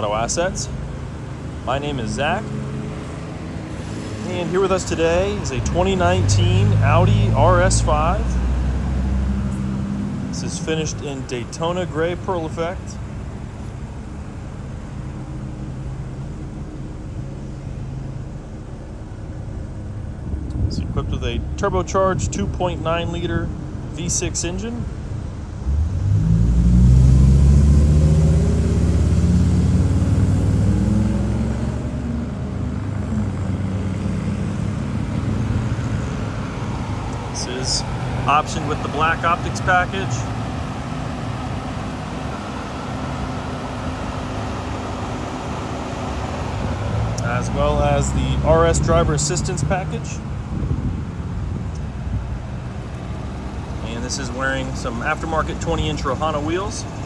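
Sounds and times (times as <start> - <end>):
car engine revving and idling: 0.0 - 57.0
low mechanical hum and rumble: 0.0 - 57.0.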